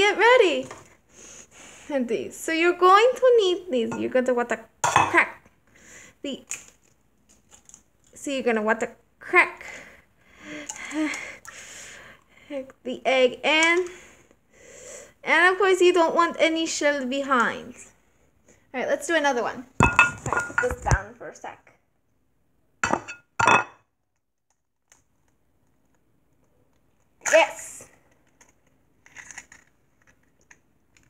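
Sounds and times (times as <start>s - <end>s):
egg clinking against glass bowl: 19.8s - 20.8s.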